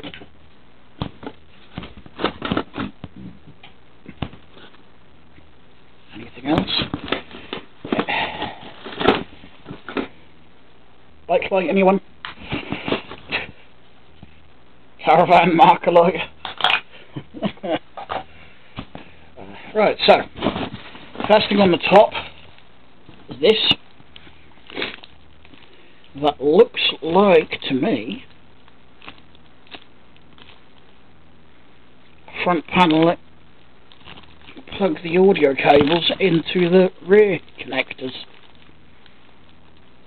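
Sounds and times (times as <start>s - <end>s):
steady low hiss: 0.0s - 40.0s
plastic bag crinkling: 27.1s - 31.0s, 33.8s - 40.0s.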